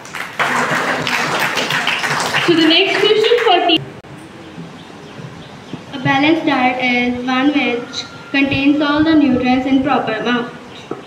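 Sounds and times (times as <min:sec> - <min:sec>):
audience clapping: 0:00.0 - 0:03.8.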